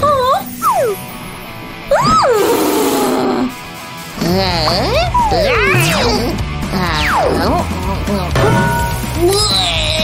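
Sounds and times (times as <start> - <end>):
background music: 0.0 - 10.0
cartoon voice grunts and cry: 4.2 - 8.3, 9.2 - 10.0.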